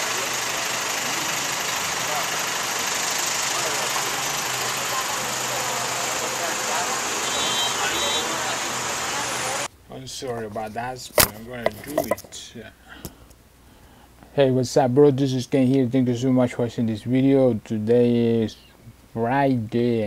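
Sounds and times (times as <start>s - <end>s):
vehicle engine idling: 0.0s - 9.7s
faint voices: 0.0s - 12.6s.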